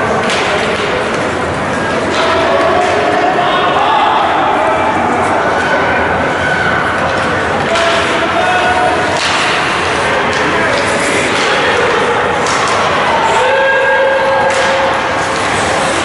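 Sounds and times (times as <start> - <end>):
spectators chattering and shouting: 0.0 - 16.0
puck and sticks knocking boards: 0.2 - 3.3, 7.1 - 13.1, 14.3 - 16.0.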